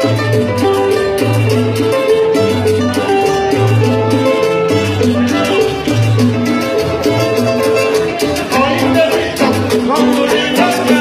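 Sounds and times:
live band playing cumbia: 0.0s - 11.0s.

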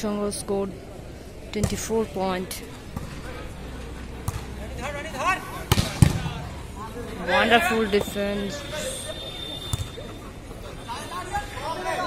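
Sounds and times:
hands slapping volleyball: 4.2s - 4.5s
player shouting: 7.2s - 9.6s.

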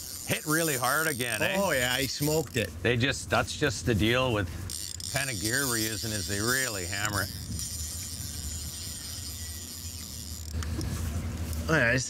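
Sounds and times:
outboard motor humming: 0.0s - 12.0s.

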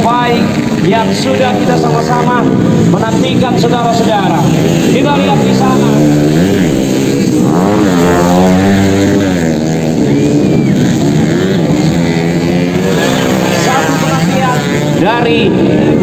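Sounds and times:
dirt bike engines revving: 0.0s - 16.0s.

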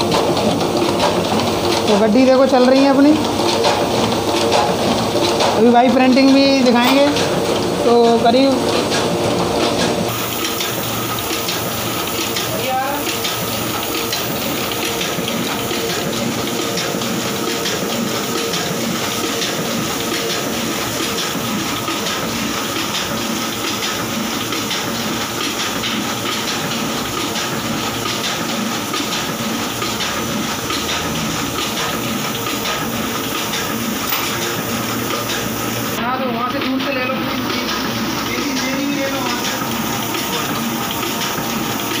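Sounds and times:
printing machine rushing: 0.0s - 42.0s.

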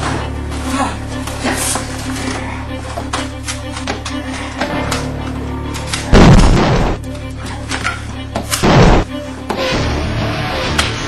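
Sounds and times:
dramatic film score music: 0.0s - 11.0s.

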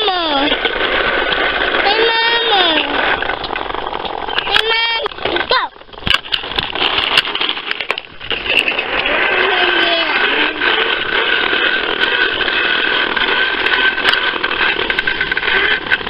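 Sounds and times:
toy lawnmower buzzing: 0.0s - 16.0s.

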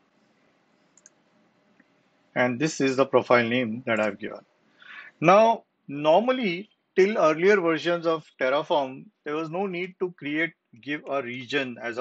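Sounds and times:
faint click: 0.9s - 1.2s.

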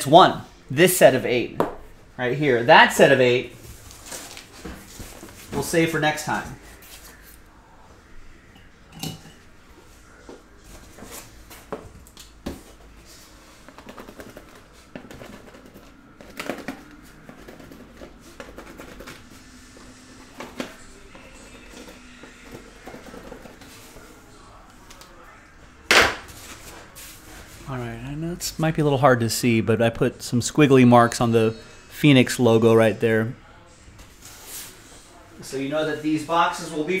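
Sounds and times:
cardboard rustling: 3.6s - 5.9s, 12.5s - 19.5s.

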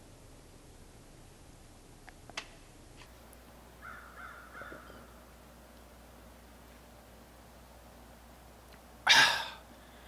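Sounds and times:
crow cawing: 3.8s - 5.2s.

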